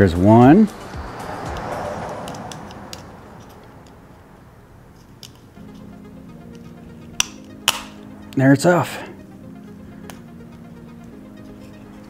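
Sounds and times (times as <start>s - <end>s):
soft background music: 0.0s - 12.0s
plastic clicks and scraping: 5.0s - 5.5s.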